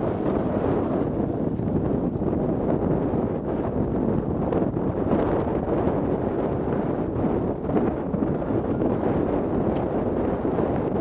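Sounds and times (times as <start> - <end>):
strong wind buffeting microphone: 0.0 - 11.0.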